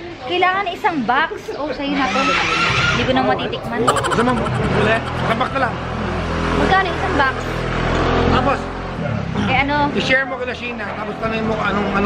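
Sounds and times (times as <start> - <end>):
people talking: 3.6 - 5.8.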